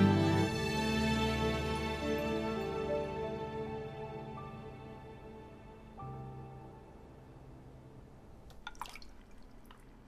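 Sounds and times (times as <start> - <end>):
faint water drips: 8.4 - 10.0.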